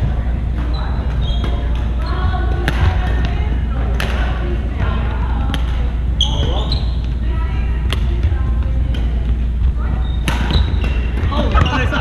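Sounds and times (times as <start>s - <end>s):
chatter: 0.0s - 12.0s
steady low rumble: 0.0s - 12.0s
sneakers squeaking on wooden floor: 0.6s - 2.6s, 6.2s - 7.2s, 9.4s - 12.0s
racket striking shuttlecock: 2.6s - 3.3s, 3.9s - 4.3s, 10.2s - 11.6s.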